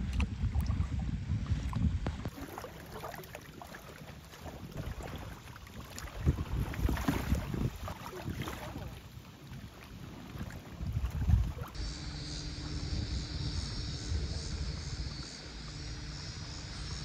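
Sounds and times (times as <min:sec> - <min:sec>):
wind buffeting microphone: 0:00.0 - 0:02.4, 0:04.4 - 0:17.0
rippling lake water: 0:00.0 - 0:17.0
faint high-pitched hum: 0:11.5 - 0:17.0.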